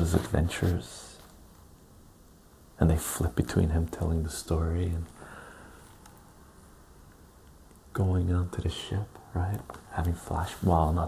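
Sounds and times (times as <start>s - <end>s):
man talking: 0.0s - 1.3s, 2.8s - 5.2s, 7.9s - 11.0s.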